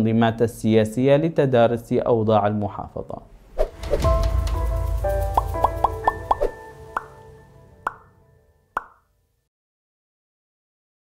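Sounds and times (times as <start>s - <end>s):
short plucked notes: 4.0s - 9.0s.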